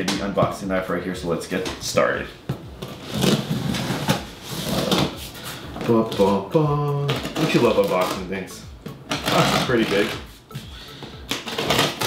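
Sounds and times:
knife slitting packing tape: 11.3s - 12.0s.

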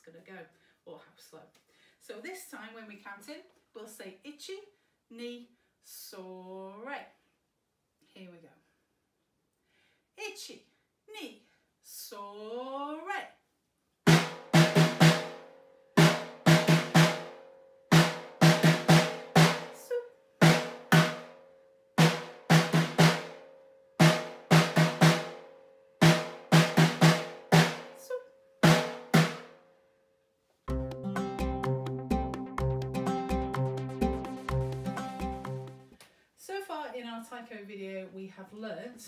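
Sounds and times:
snare drum hits: 14.1s - 15.4s, 16.0s - 19.7s, 20.4s - 21.3s, 22.0s - 23.4s, 24.0s - 25.4s, 26.0s - 27.9s, 28.6s - 29.5s
music: 14.1s - 29.6s, 30.7s - 36.0s.

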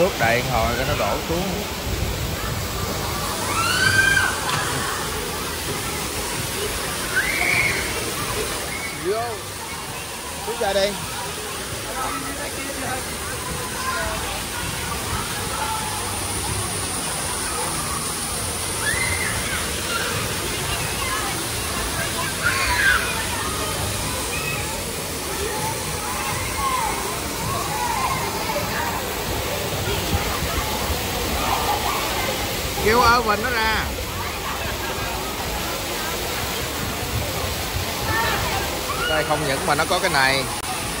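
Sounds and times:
water pouring into pool: 0.0s - 41.0s
children calling out: 3.2s - 9.0s, 17.2s - 28.9s.

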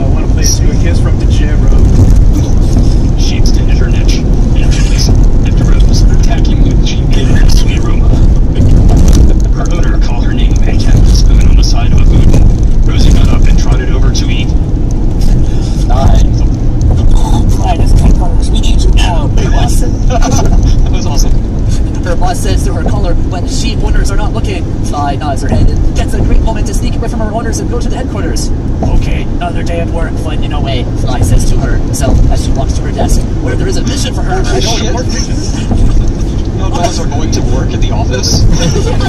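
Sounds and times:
faint voices: 0.0s - 14.5s, 15.1s - 39.0s
car road and engine rumble: 0.0s - 39.0s.

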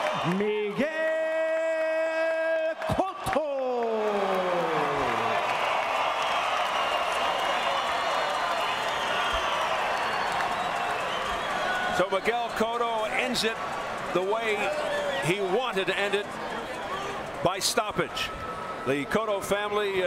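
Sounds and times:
crowd cheering and applauding: 0.0s - 20.0s.

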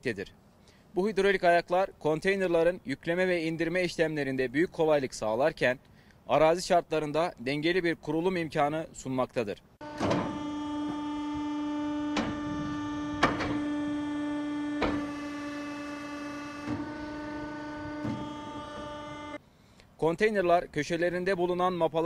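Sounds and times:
hydraulic pump humming: 9.8s - 19.4s.

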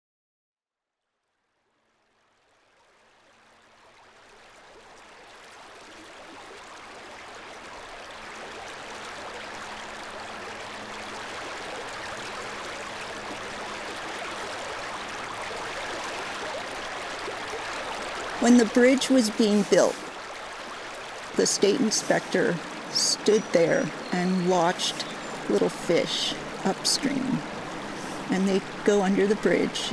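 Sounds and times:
water rushing over rocks: 4.8s - 29.9s.

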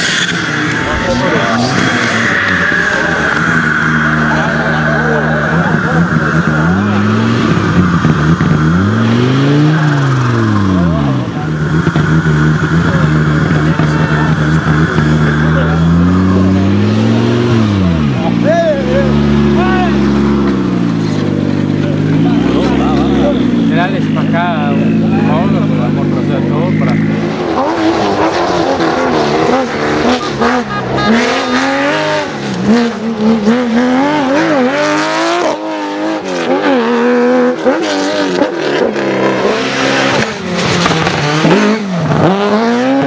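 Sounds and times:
people's voices: 0.0s - 43.0s
rally car engine revving: 0.0s - 43.0s.

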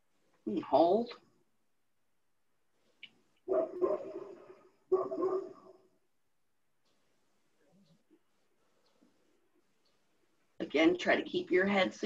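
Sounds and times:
dog barking: 3.4s - 5.9s.

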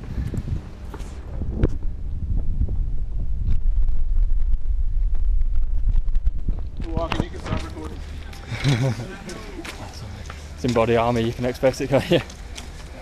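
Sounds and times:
wind buffeting microphone: 0.0s - 8.0s
footsteps and gear knocks: 5.9s - 8.4s, 9.2s - 13.0s.

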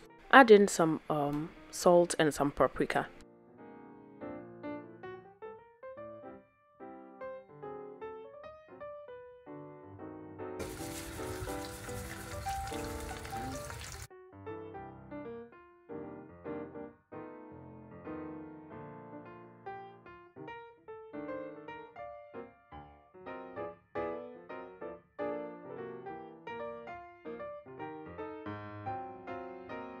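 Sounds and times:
piano background music: 0.0s - 30.0s
eggs sizzling in hot oil: 10.6s - 14.1s.

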